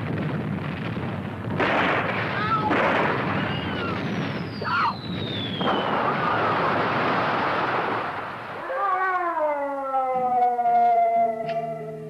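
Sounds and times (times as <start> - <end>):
explosion blast: 0.0 - 8.7.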